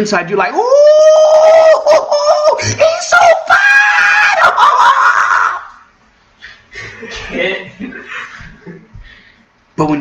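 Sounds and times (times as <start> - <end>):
man squealing: 0.5 - 5.9.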